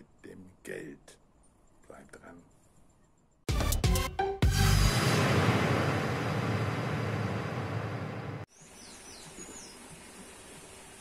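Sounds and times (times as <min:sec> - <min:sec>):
faint garden ambience: 0:00.0 - 0:03.5, 0:08.4 - 0:11.0.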